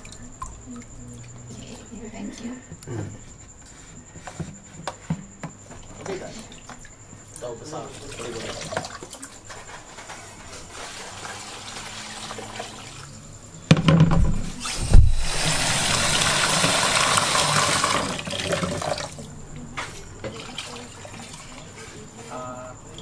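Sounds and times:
water pouring: 6.3s - 9.4s, 10.7s - 13.3s, 14.8s - 19.3s, 20.2s - 21.9s
knocks: 13.7s - 15.3s.

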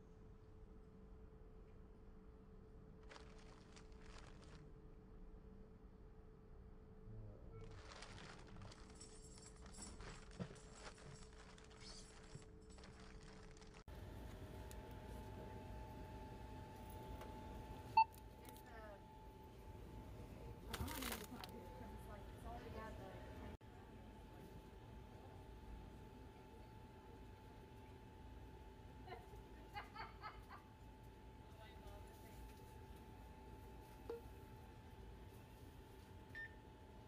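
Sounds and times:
faint steady hum: 0.0s - 37.0s
checkout terminal beep: 17.6s - 18.2s, 36.3s - 36.6s.

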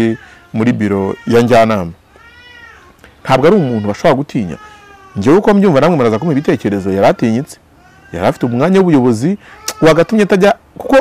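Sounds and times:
person speaking: 0.0s - 2.0s, 3.0s - 11.0s
faint animal cry: 0.0s - 8.8s.

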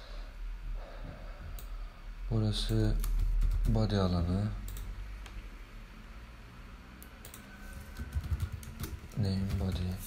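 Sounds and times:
typing on computer keyboard: 3.0s - 3.8s, 7.2s - 10.0s.

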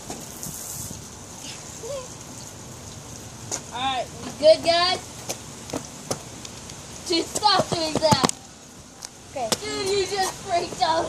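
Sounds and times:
steady hiss: 0.0s - 11.0s
footsteps on pavement: 3.4s - 11.0s.

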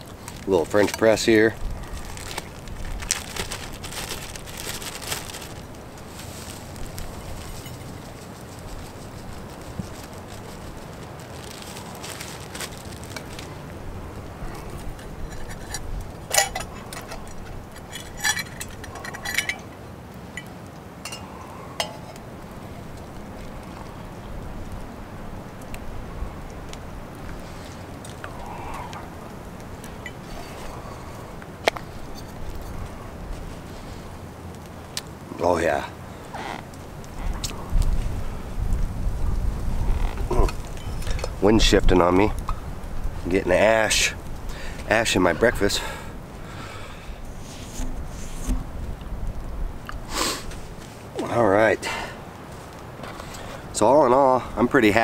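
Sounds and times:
plastic pouch crinkling: 0.0s - 15.8s
wind rumble: 0.0s - 20.4s, 21.0s - 51.2s
metal cookware clinking: 15.3s - 19.7s.

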